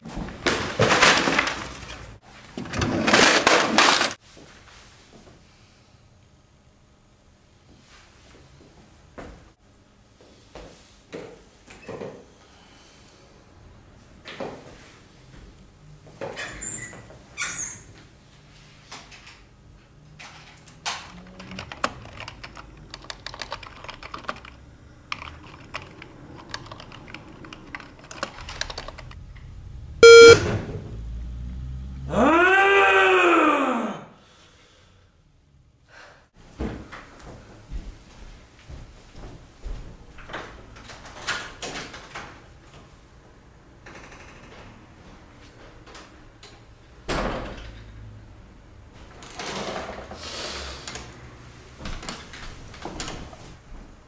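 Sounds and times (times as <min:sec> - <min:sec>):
keyboard typing: 0:21.4 - 0:29.2, 0:30.0 - 0:30.4
loud electronic beep: 0:30.0 - 0:30.5
man crying out: 0:32.1 - 0:34.1.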